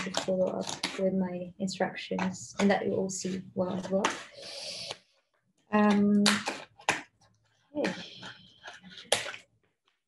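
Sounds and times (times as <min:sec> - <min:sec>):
scissors cutting plastic tray: 0:00.0 - 0:01.2
plastic crackling: 0:00.0 - 0:04.2.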